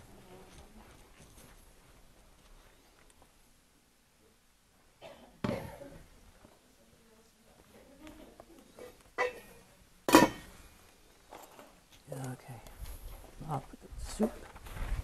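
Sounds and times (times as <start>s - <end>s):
cookware and dishes clinking: 8.8s - 10.5s.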